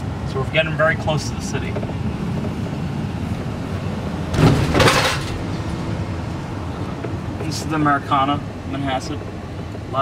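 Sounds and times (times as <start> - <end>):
car cabin road and engine rumble: 0.0 - 10.0.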